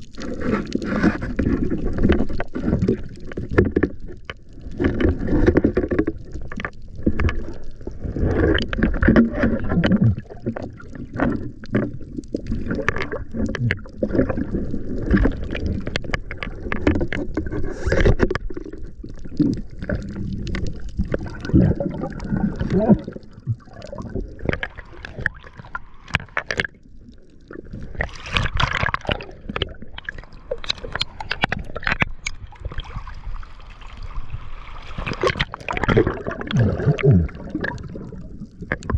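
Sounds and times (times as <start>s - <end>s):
water sloshing and gurgling: 0.0s - 38.9s
water splashing: 0.0s - 38.9s.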